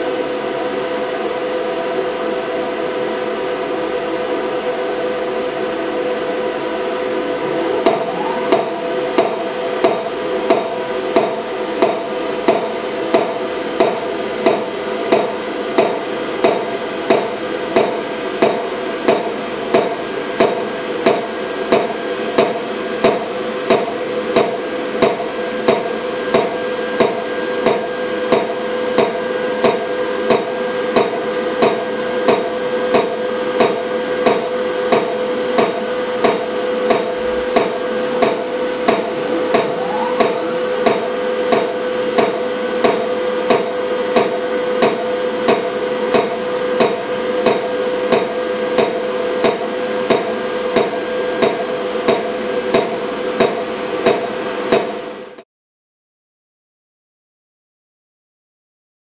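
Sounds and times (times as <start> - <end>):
machine humming: 5.7 - 11.7, 37.9 - 42.2.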